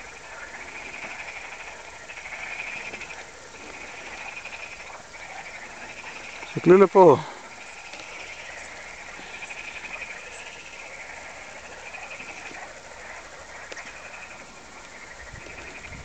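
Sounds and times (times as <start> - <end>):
frogs croaking: 0.0 - 16.0.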